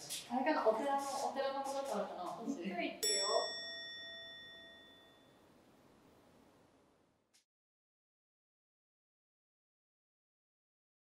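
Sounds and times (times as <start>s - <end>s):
bell ringing: 3.0s - 5.4s.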